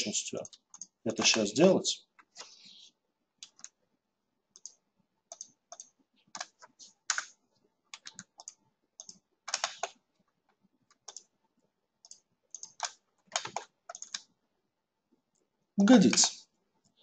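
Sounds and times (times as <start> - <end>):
mouse and keyboard clicking: 0.4 - 1.4, 3.4 - 3.8, 4.6 - 7.4, 8.0 - 10.0, 10.9 - 11.3, 12.0 - 14.3.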